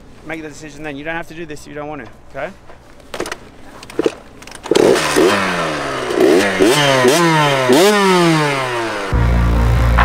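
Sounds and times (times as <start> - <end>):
dirt bike engine revving: 4.0 - 10.0.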